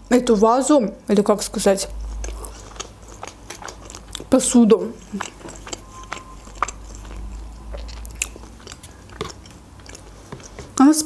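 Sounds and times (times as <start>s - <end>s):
person chewing food: 1.6s - 10.9s
wet mouth clicks and smacks: 5.0s - 10.7s.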